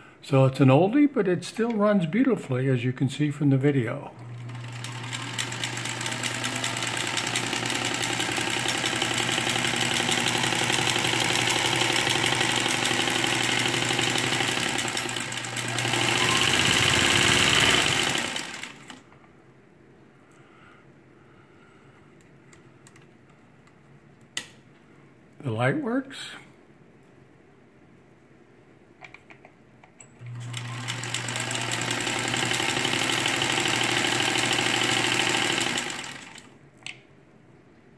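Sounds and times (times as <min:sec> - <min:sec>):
sewing machine running: 0:04.2 - 0:19.0, 0:30.2 - 0:36.6.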